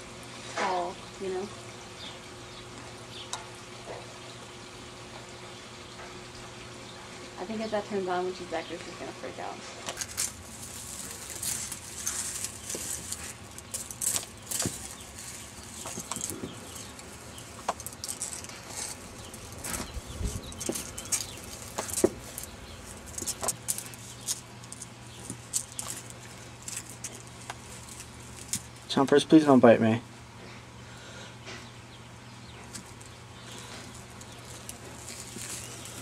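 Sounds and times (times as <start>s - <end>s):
dry leaves rustling and crackling: 9.9s - 29.3s, 32.6s - 36.0s.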